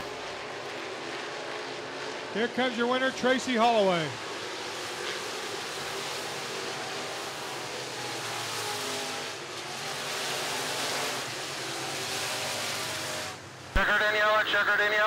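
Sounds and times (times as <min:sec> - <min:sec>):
race car engines: 0:00.0 - 0:15.0.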